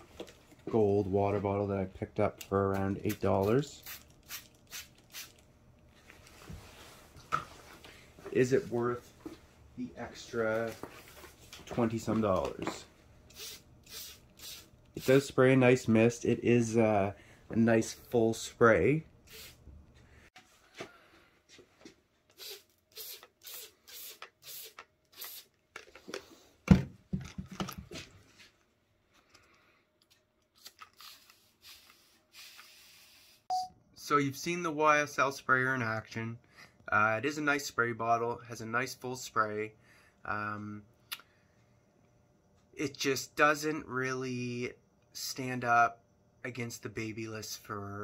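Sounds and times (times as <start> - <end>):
spray bottle misting: 3.8 - 5.4, 13.3 - 15.3, 19.3 - 19.6, 30.6 - 33.4.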